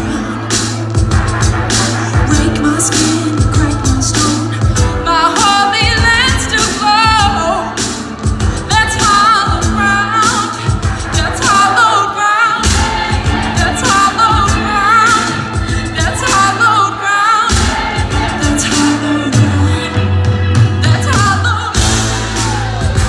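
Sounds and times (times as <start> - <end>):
woman singing with vibrato: 0.0 - 22.4
steady bass: 0.0 - 23.0
drum hits: 12.6 - 16.5, 17.5 - 19.5, 20.5 - 23.0.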